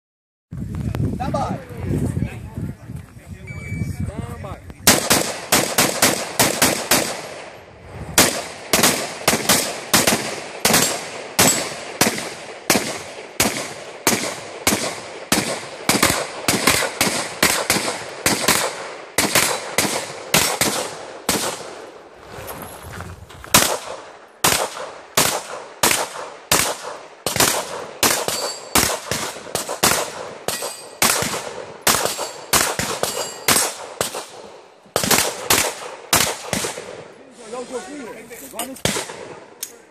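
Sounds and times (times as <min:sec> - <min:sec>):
rapid gunshots: 0:04.8 - 0:07.6, 0:08.2 - 0:21.8, 0:23.5 - 0:37.1.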